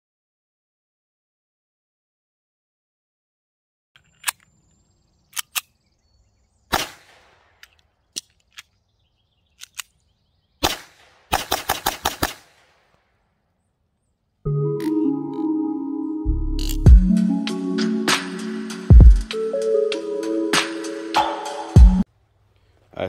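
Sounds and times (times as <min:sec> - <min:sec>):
pistol shots: 0:06.7 - 0:07.7, 0:10.6 - 0:13.0.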